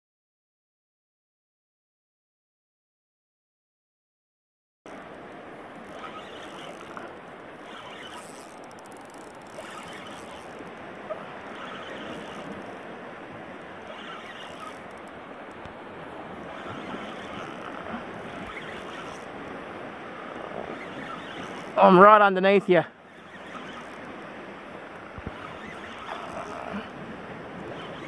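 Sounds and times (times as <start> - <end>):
water lapping against kayak hull: 4.9 - 28.0.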